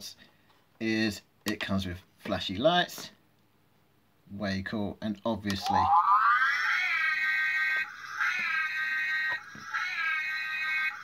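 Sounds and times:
toy car electronic siren wail: 0:05.6 - 0:11.0.

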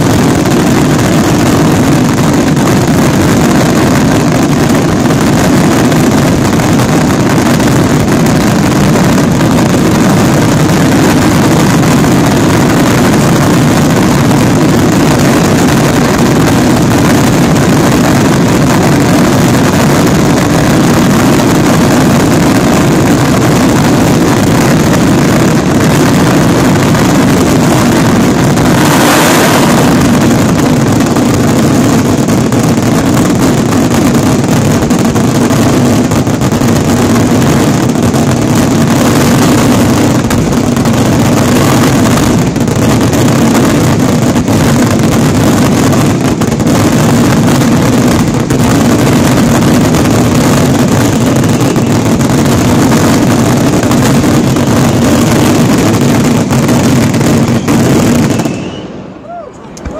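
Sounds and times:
fireworks bursting: 0:00.0 - 0:59.9.

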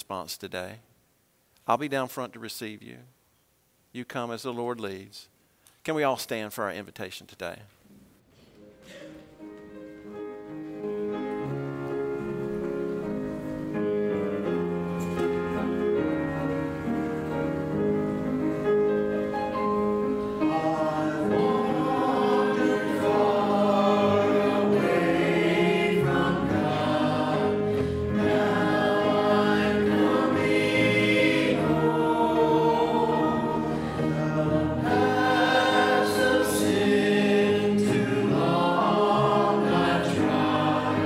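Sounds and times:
group singing a hymn: 0:20.2 - 0:41.0.

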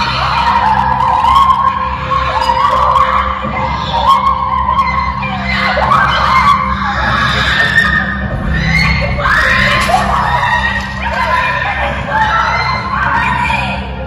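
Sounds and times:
women screaming: 0:00.0 - 0:14.0.

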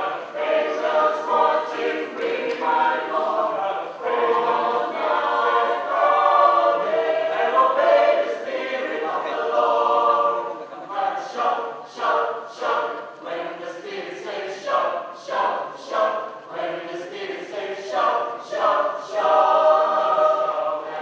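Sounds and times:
choir singing unaccompanied: 0:00.0 - 0:21.0.

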